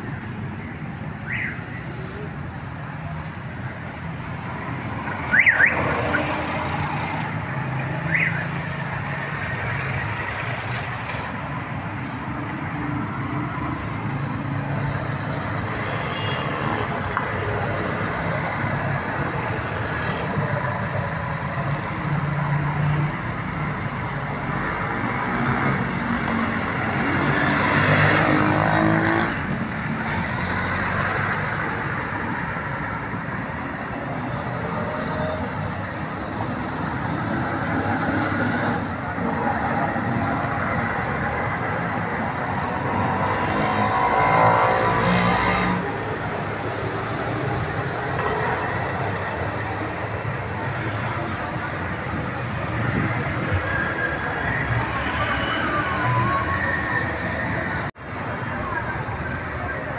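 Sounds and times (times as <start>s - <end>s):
road traffic noise: 0.0s - 59.9s.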